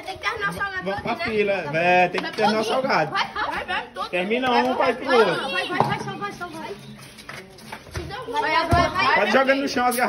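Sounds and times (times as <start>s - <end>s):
children's voices chattering: 0.0s - 10.0s.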